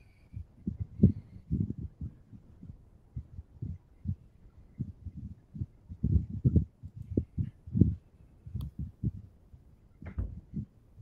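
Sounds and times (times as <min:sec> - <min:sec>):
dull low thumps: 0:00.4 - 0:11.0.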